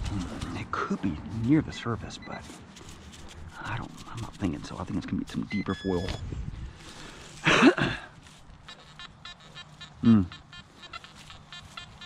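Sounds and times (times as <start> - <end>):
metal detector beeping: 1.6 - 2.6, 4.7 - 6.4, 8.5 - 12.0.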